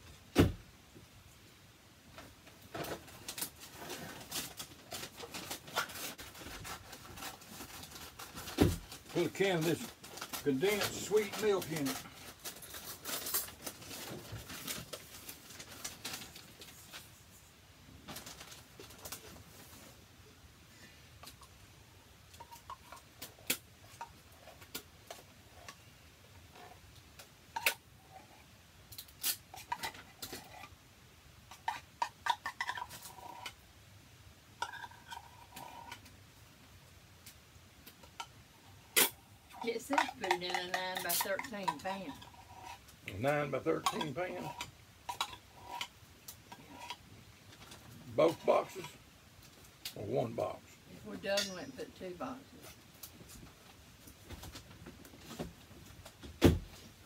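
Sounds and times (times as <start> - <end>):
metal spoon scraping tin can: 38.9 - 42.9.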